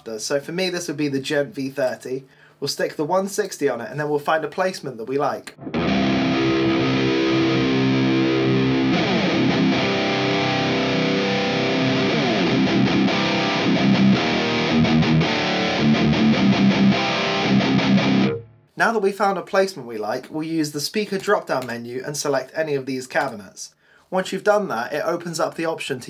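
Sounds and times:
distorted electric guitar riffing: 0:05.5 - 0:18.5.

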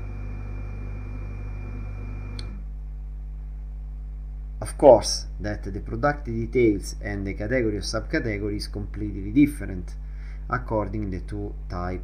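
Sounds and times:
thin high whine: 0:00.0 - 0:02.6
low electrical hum: 0:00.0 - 0:12.0
faint click: 0:02.3 - 0:02.6.

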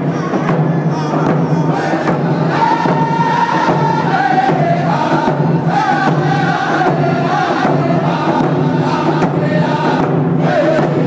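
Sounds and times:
frame drums beating: 0:00.0 - 0:11.0
men singing together: 0:00.0 - 0:11.0.

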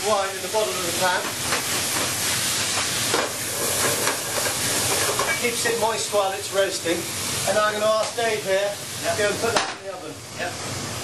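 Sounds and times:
wine sizzling in a hot pan: 0:00.0 - 0:11.0.

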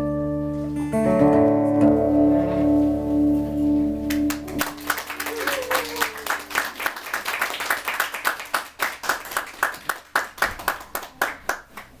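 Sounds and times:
audience applauding: 0:04.1 - 0:12.0.

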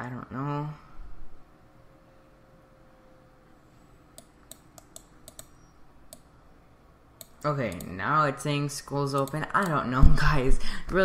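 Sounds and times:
low room noise: 0:00.0 - 0:11.0
sharp computer clicks: 0:04.2 - 0:06.3, 0:07.2 - 0:08.0, 0:09.1 - 0:09.8.

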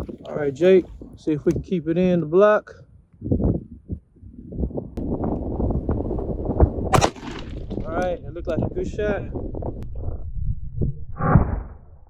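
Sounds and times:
irregular low rumbling: 0:03.0 - 0:12.0.

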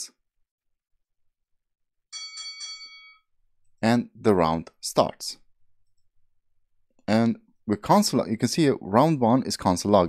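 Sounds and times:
timer bell ringing: 0:02.1 - 0:03.3.

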